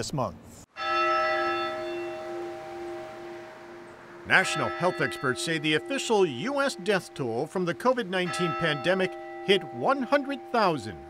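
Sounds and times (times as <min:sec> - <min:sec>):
church bell ringing: 0:00.7 - 0:11.0.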